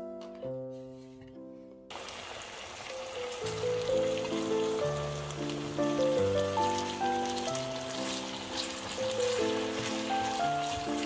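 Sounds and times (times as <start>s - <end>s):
pork frying in hot oil: 1.9s - 11.0s
background music: 3.2s - 11.0s.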